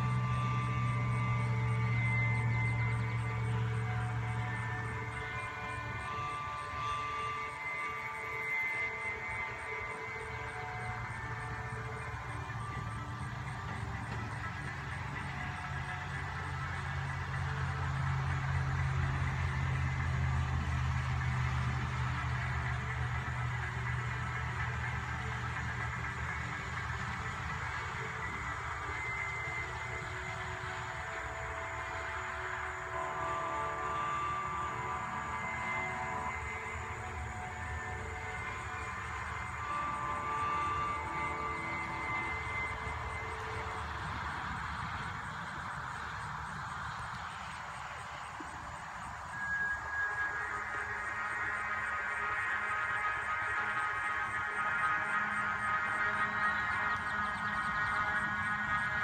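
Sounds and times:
distant vehicle rumble: 0.0 - 59.0
faint high steady tones: 0.0 - 59.0.

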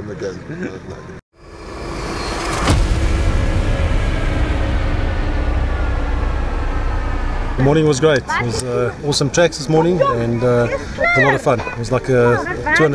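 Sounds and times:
sharp knock: 1.4 - 8.7
vehicle engine running: 1.4 - 9.4.

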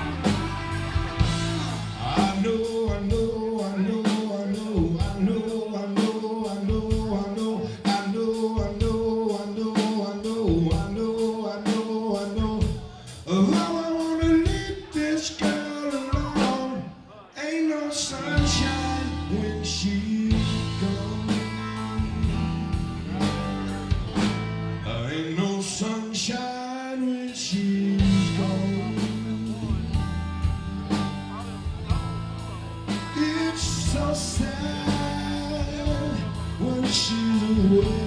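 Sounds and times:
electric bass: 0.0 - 3.5, 18.2 - 25.1, 27.9 - 38.0
electric guitar: 0.0 - 13.8, 18.0 - 26.3, 27.3 - 38.0
drum kit: 0.0 - 16.9, 18.2 - 24.8, 27.3 - 38.0
man singing: 0.0 - 23.9, 24.7 - 38.0.

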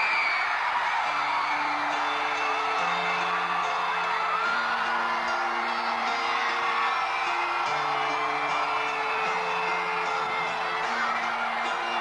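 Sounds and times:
audience whooping and shouting: 0.0 - 12.0.

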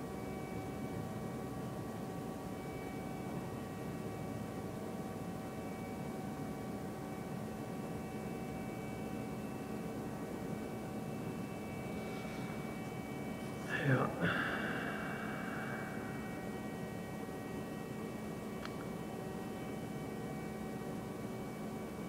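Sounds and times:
faint whining tones: 0.0 - 22.0
steady mechanical hum: 0.0 - 22.0.

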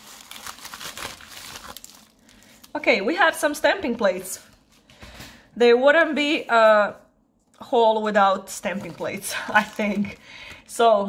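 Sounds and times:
plastic bag crinkling: 0.0 - 2.8, 8.6 - 10.3.

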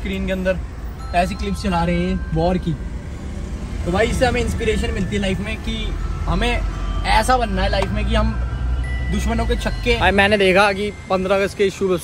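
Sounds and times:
man talking: 0.0 - 2.9, 3.8 - 12.0
car rumble from inside: 0.0 - 11.4.

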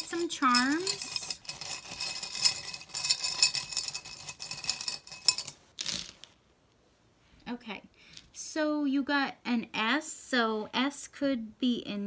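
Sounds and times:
metal charms rattling in glass bowl: 0.0 - 5.6
charms clattering onto table: 0.0 - 6.4.

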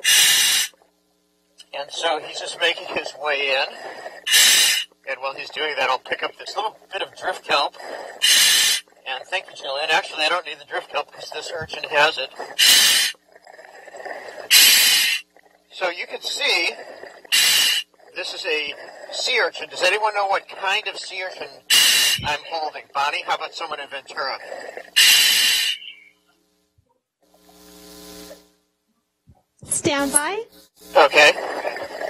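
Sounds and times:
diver breathing through regulator: 0.0 - 0.8, 2.8 - 5.2, 7.5 - 9.2, 11.7 - 15.6, 16.2 - 19.4, 21.6 - 22.5, 24.2 - 26.0, 31.2 - 32.0
steady low hum: 0.0 - 32.0.

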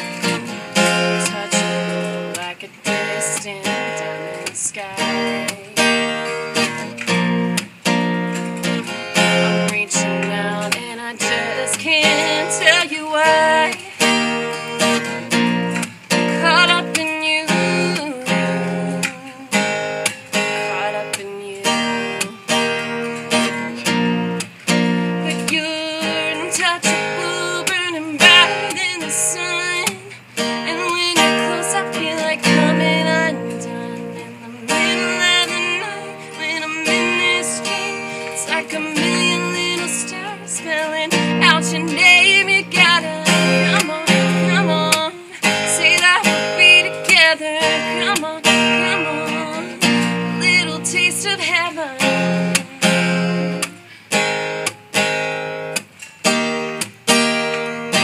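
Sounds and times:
woman singing a ballad: 0.0 - 24.0, 24.7 - 55.2
acoustic guitar strumming: 0.0 - 58.0.

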